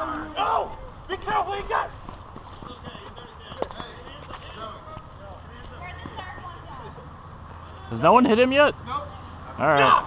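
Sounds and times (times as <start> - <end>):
footsteps on pavement: 0.0 - 7.9
distant people calling out: 0.0 - 10.0.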